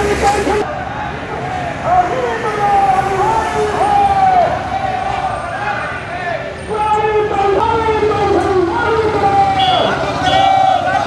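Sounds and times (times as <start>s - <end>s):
loud raised voices: 0.0s - 11.0s
motorcycle and vehicle engines: 0.0s - 11.0s.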